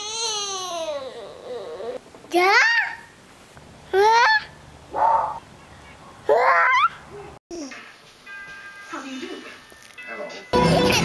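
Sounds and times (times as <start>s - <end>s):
baby squealing: 0.0s - 2.0s, 4.0s - 5.4s, 6.3s - 7.0s.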